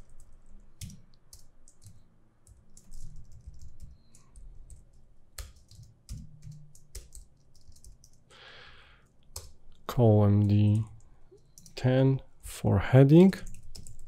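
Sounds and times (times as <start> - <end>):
computer keyboard typing: 0.0 - 8.3, 9.3 - 9.8, 10.4 - 11.8, 13.4 - 14.0.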